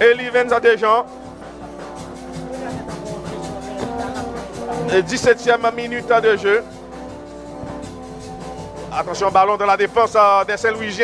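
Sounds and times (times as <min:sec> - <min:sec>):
music with steady beat: 0:00.0 - 0:11.0.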